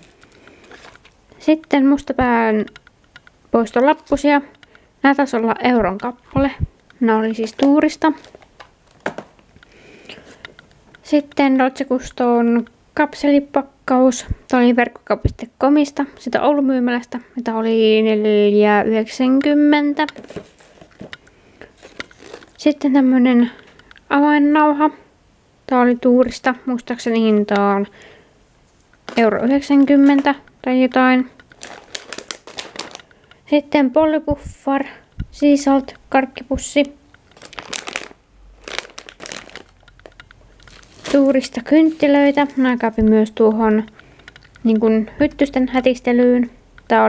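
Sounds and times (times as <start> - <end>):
plastic packaging crinkling: 0.0 - 1.3, 7.1 - 10.5, 20.0 - 22.9, 29.0 - 33.5, 36.8 - 44.5
woman speaking: 1.4 - 2.8, 3.5 - 8.3, 11.0 - 20.4, 22.6 - 25.1, 25.7 - 28.0, 29.1 - 31.4, 33.5 - 37.0, 41.0 - 44.0, 44.6 - 47.0.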